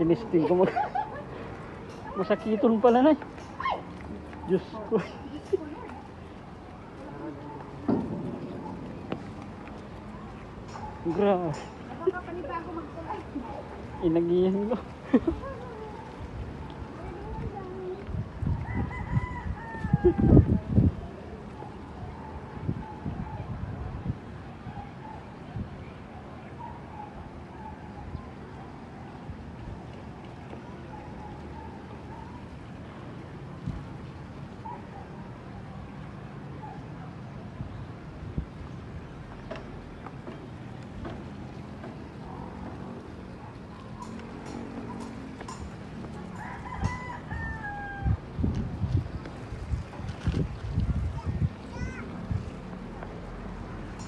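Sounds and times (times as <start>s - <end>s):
rooster crowing: 18.6s - 20.4s, 46.3s - 48.2s.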